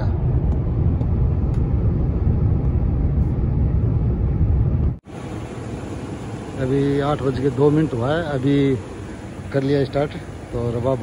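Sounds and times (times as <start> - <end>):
car road and engine rumble: 0.0 - 11.0
quieter steady hum: 0.0 - 11.0.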